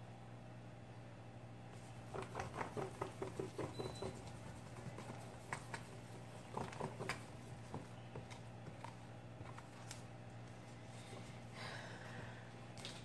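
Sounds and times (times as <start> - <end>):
stick stirring wet grout: 1.8 - 8.8
stick scraping and knocking tub: 1.9 - 8.8.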